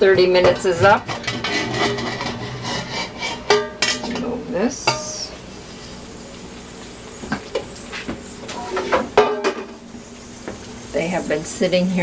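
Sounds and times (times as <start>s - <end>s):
metal lid clinking and clanking: 0.4s - 5.1s, 8.6s - 9.7s.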